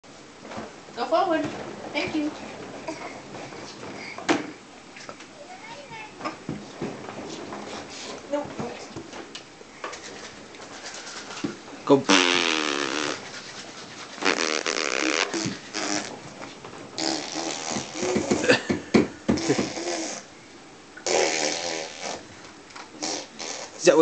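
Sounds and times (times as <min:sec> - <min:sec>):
baby blowing raspberries: 0:12.1 - 0:16.2, 0:17.0 - 0:18.6, 0:19.3 - 0:20.3, 0:21.0 - 0:22.3, 0:23.0 - 0:23.8.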